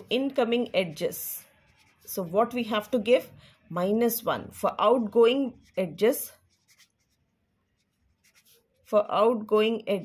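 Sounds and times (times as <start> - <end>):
marker scratching on paper: 0.2 - 3.2, 4.7 - 9.2.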